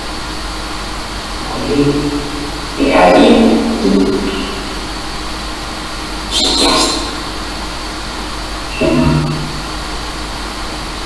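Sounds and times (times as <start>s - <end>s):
static hiss: 0.0s - 11.0s
clipped pitched fragment: 6.3s - 7.4s.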